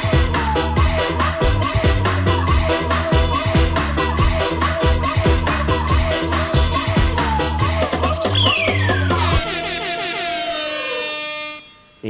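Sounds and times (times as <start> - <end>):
synth tone sliding down in pitch: 8.4 - 11.6.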